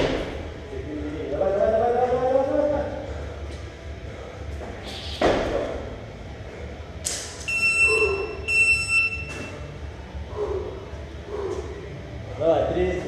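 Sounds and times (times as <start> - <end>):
long electronic timer beeps: 7.5 - 9.5.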